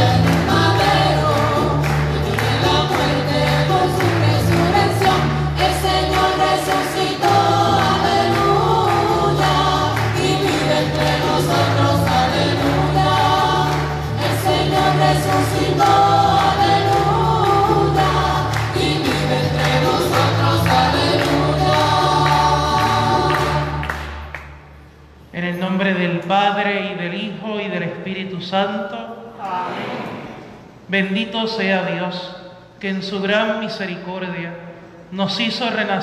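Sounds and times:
steady bass line: 0.0s - 24.2s
choir singing a hymn: 0.0s - 24.3s, 29.4s - 30.7s.

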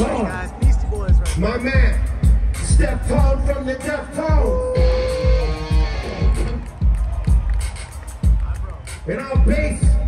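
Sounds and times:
steady drum beat: 0.0s - 10.0s.

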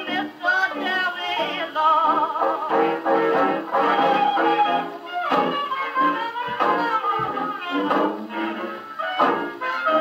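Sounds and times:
jazz band record on gramophone: 0.0s - 10.0s.

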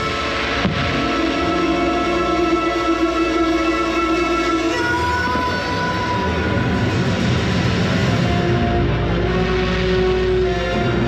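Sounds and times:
fireworks rumbling and crackling: 0.0s - 3.5s
show music: 0.0s - 11.0s.

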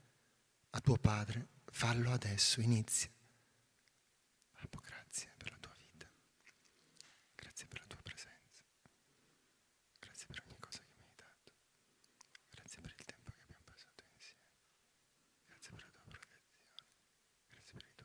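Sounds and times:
people whispering: 4.5s - 6.2s, 7.4s - 8.6s, 10.0s - 11.6s, 12.2s - 14.5s, 15.5s - 16.9s, 17.5s - 18.0s.

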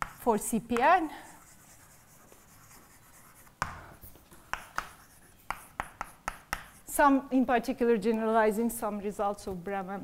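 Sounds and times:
chalk taps on blackboard: 0.0s - 1.0s, 1.7s - 6.8s.

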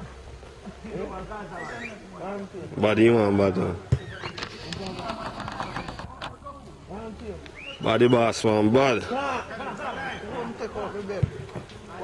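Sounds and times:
distant footballers shouting: 9.0s - 12.0s.

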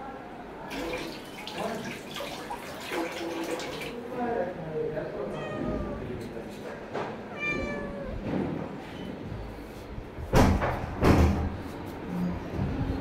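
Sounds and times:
cat meowing: 5.3s - 6.2s, 7.3s - 8.3s
loud thump: 10.2s - 11.6s.

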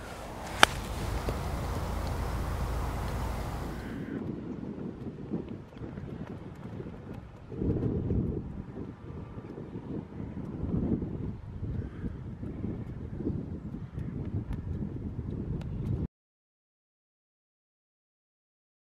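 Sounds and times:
wind buffeting microphone: 0.0s - 16.1s.

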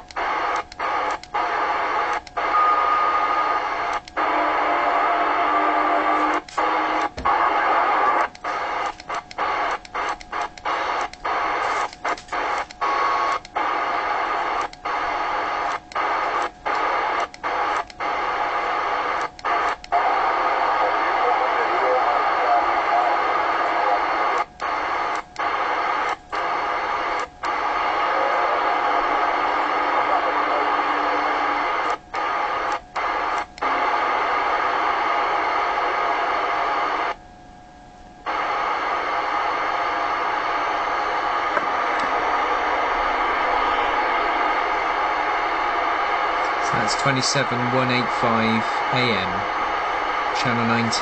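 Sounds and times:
radio static: 0.0s - 37.2s, 38.3s - 51.0s
voices over radio: 0.0s - 37.2s, 38.3s - 51.0s.

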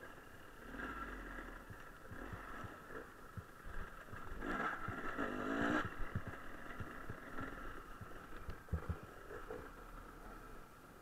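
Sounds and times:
dirt bike engine revving: 0.0s - 10.6s
thumps and knocks from bumpy track: 8.0s - 9.6s.

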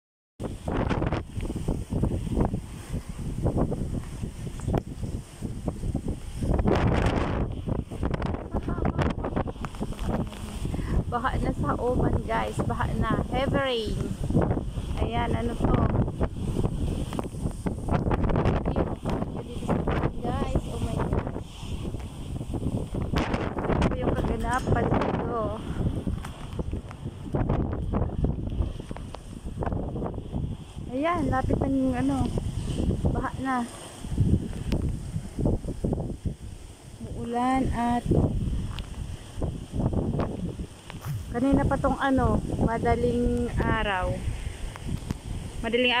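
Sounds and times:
strong wind buffeting microphone: 0.4s - 46.0s.

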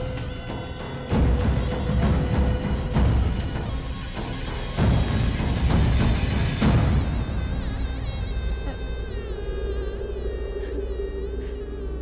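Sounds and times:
steady low drone: 0.0s - 12.0s.

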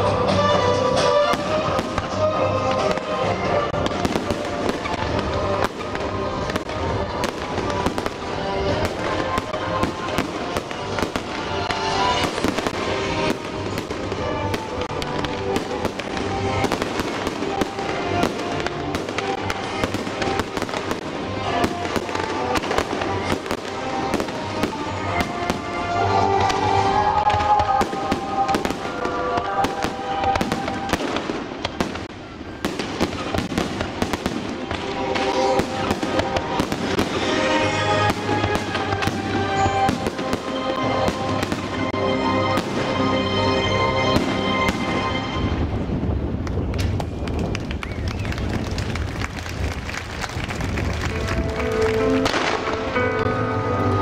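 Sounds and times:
music playing: 0.0s - 46.4s, 50.3s - 54.0s
fireworks bangs and crackling: 0.1s - 53.2s.

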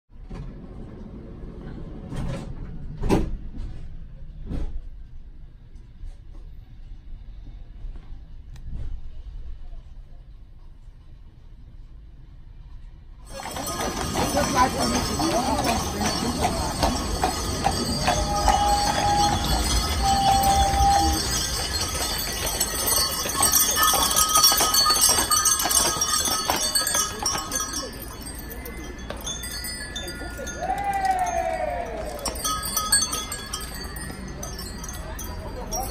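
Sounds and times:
city street traffic rumble: 0.2s - 35.9s
harness fittings jingling: 13.3s - 35.9s
hooves on road: 13.3s - 35.9s.

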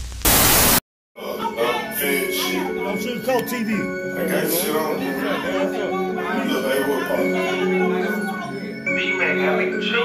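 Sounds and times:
static hiss: 0.0s - 0.8s
music with voice: 1.2s - 10.0s.

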